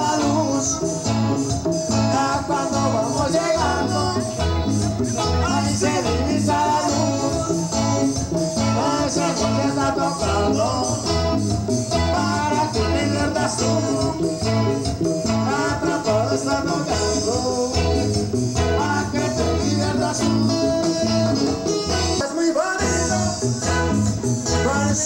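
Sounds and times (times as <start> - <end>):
live latin dance band: 0.0 - 25.0
person singing: 0.0 - 25.0.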